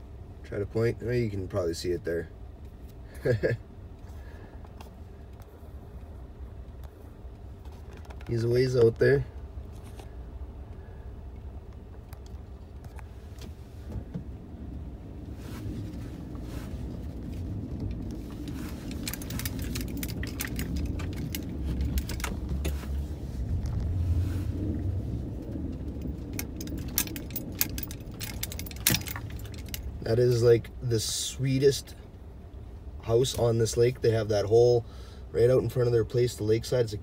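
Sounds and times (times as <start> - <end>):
vehicle engine and tyre rumble: 0.0 - 37.0
light clicks and rattles: 4.6 - 14.9, 15.6 - 32.2.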